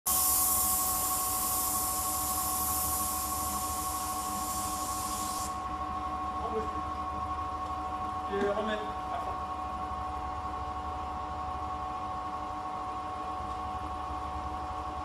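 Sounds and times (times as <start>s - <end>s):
spray gun hissing: 0.1s - 5.6s
steady hum with tones: 0.1s - 15.0s.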